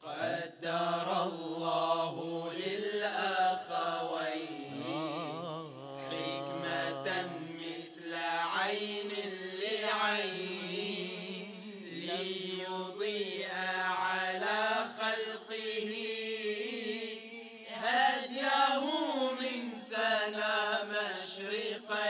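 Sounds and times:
male vocal group singing: 0:00.0 - 0:22.0.

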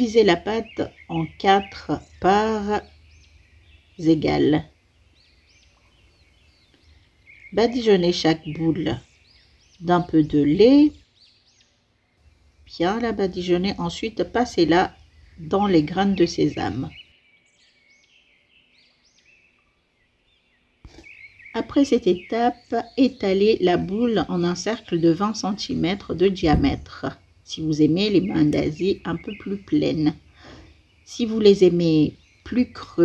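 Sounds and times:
small birds chirping: 0:00.0 - 0:33.0
high bird chirps: 0:20.8 - 0:32.8.

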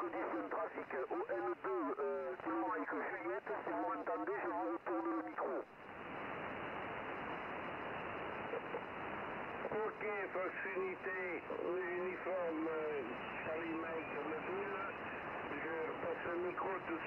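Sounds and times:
voice over radio speaker: 0:00.0 - 0:05.7, 0:09.6 - 0:17.0
radio receiver hiss: 0:00.0 - 0:17.0.

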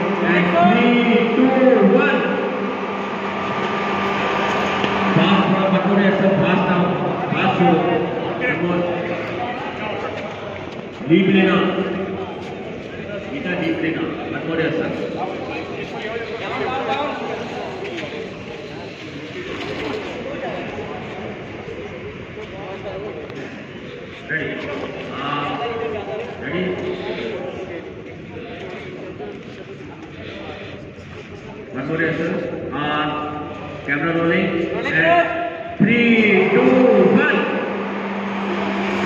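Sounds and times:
indistinct voices talking: 0:00.0 - 0:39.0
steady mechanical hum: 0:00.0 - 0:39.0.

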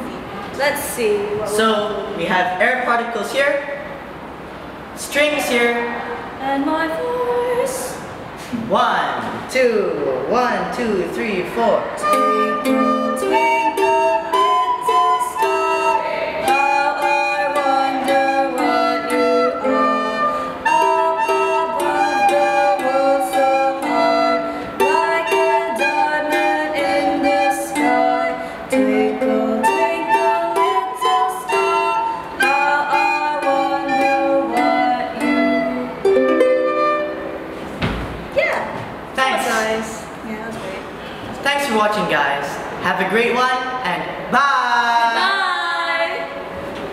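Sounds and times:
girl singing: 0:06.4 - 0:08.0, 0:12.0 - 0:36.4, 0:45.1 - 0:46.4
soprano recorder: 0:12.0 - 0:37.5
ukulele strumming: 0:12.0 - 0:37.8.

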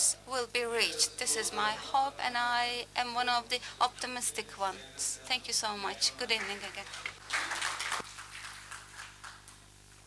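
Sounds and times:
small audience clapping: 0:06.3 - 0:10.0.

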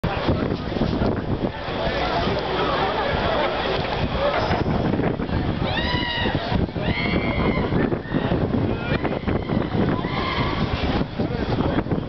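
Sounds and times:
outdoor crowd noise: 0:00.0 - 0:12.0
wind buffeting microphone: 0:00.0 - 0:12.0.

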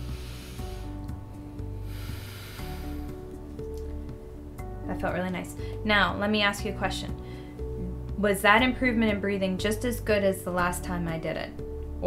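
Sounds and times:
woman breathing in deeply: 0:00.0 - 0:03.3, 0:07.2 - 0:07.7
music with sustained notes: 0:00.0 - 0:12.0.

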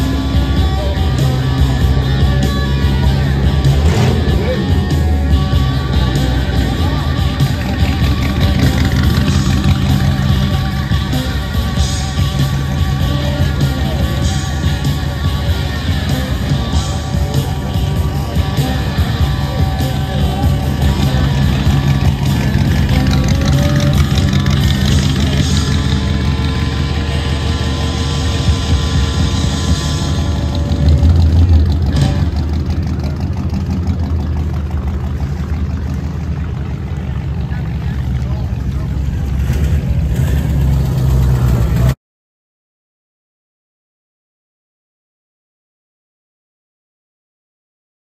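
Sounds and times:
car engine rumbling: 0:00.0 - 0:42.0
music: 0:00.0 - 0:42.0
voices: 0:00.0 - 0:42.0.

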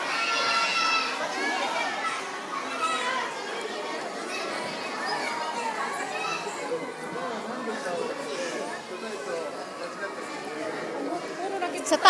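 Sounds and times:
young children talking and calling out: 0:00.0 - 0:12.0.

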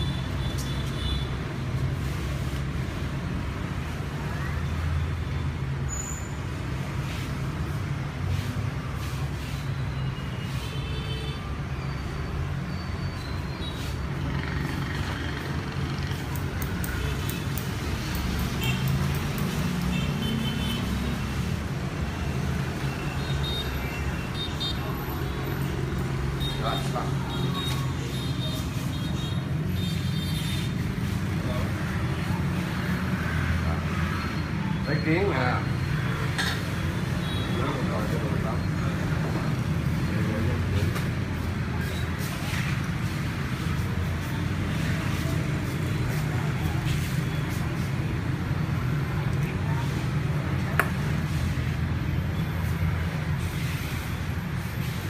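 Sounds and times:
motorbike traffic: 0:00.0 - 0:55.0.

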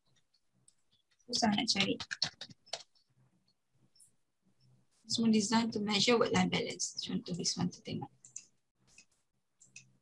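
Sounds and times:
computer mouse clicks: 0:00.1 - 0:03.0, 0:08.2 - 0:10.0.

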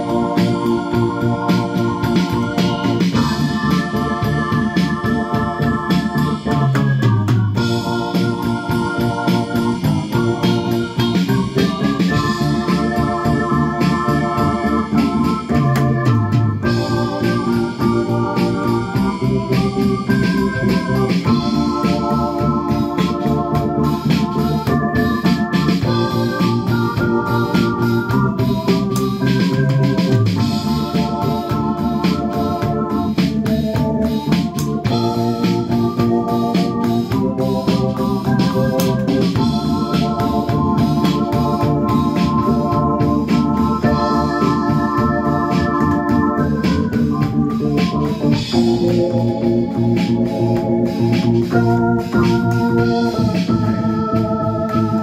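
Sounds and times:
electronic drum beat: 0:00.0 - 0:55.0
low bass line: 0:00.0 - 0:55.0
synthesizer organ chords: 0:00.0 - 0:55.0.

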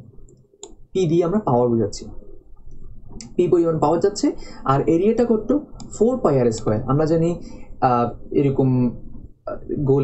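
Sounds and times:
person lecturing: 0:00.6 - 0:02.2, 0:03.2 - 0:10.0.

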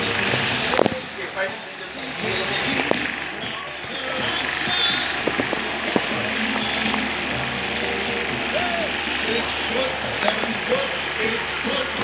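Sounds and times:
rising and falling voice-like sound: 0:00.0 - 0:12.0.

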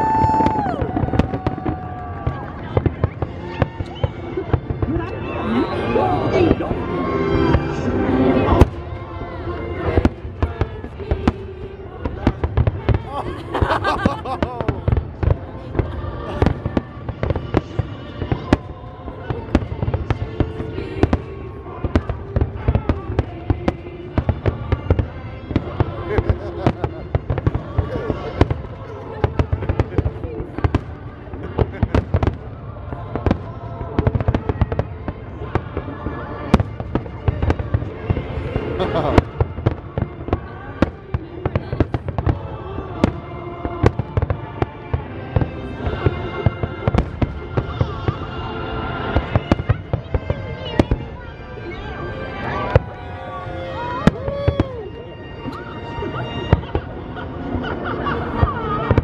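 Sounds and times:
fireworks bursting: 0:00.0 - 0:59.0
music soundtrack: 0:00.0 - 0:59.0.

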